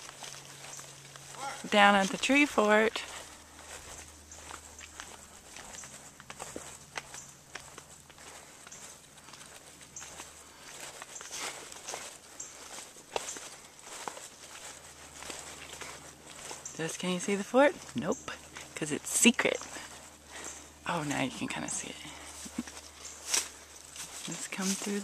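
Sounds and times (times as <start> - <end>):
footsteps crunching on dirt trail: 0.0 - 25.0
steady low hum: 0.0 - 25.0.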